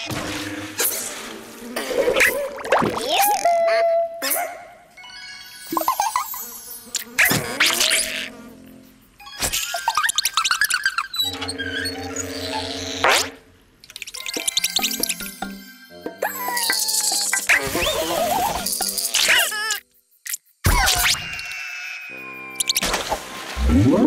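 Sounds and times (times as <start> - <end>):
playful cartoon music: 0.0 - 20.0, 20.6 - 24.0
comic sound effects: 23.6 - 24.0.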